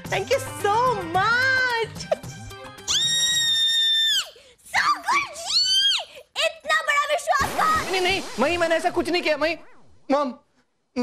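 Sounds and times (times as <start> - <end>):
woman squealing with delight: 2.9 - 4.4.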